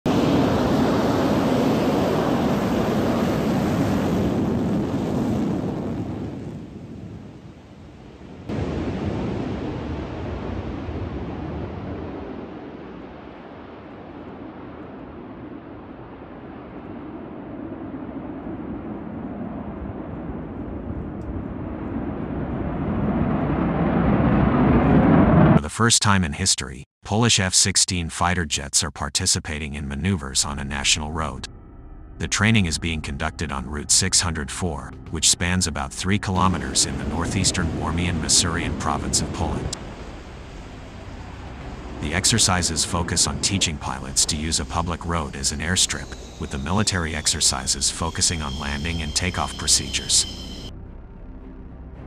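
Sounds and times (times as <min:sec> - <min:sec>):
jet engine rushing: 0:00.1 - 0:07.6, 0:32.2 - 0:50.7
jet taking off and climbing: 0:00.1 - 0:31.5, 0:32.1 - 0:50.7.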